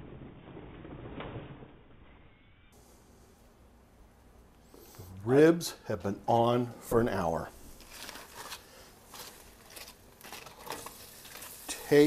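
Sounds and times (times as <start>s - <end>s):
aluminium foil crinkling: 7.8s - 12.0s.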